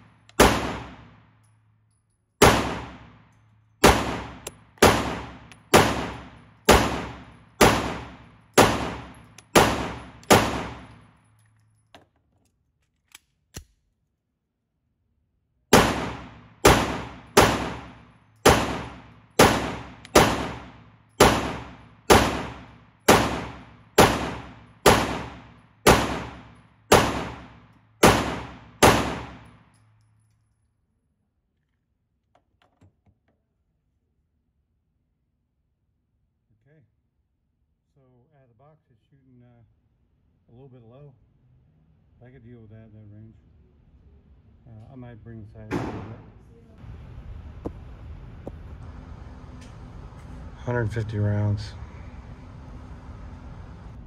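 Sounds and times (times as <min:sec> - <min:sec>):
pistol shots echoing indoors: 0:00.0 - 0:01.6, 0:02.4 - 0:11.4, 0:15.7 - 0:29.8, 0:45.7 - 0:46.4.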